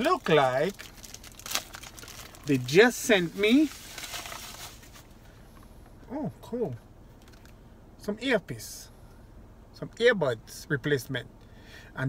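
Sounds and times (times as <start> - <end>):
packaging rustling and crinkling: 0.0 - 5.1.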